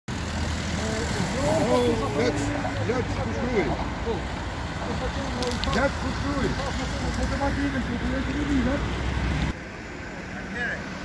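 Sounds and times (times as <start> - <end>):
road traffic rumble: 0.1 - 11.0
people talking indistinctly: 0.8 - 9.0.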